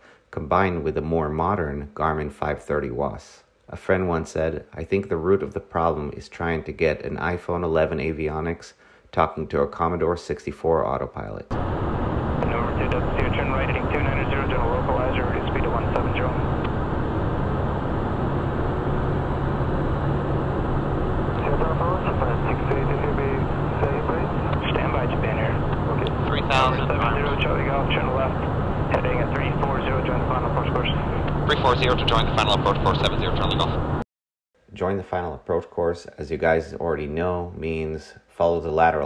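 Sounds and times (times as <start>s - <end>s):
jet cockpit drone: 11.5s - 34.0s
low hum: 11.5s - 34.0s.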